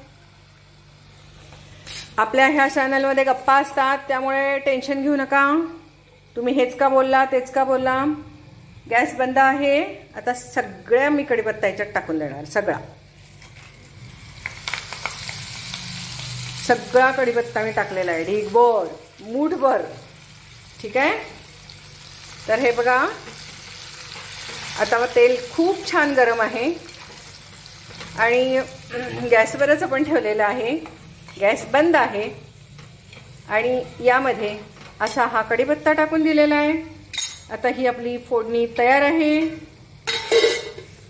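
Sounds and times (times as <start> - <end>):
leaves sizzling in hot oil: 0.0 - 5.5, 12.4 - 41.0
woman's voice: 28.2 - 32.4, 33.5 - 36.9, 37.5 - 39.6.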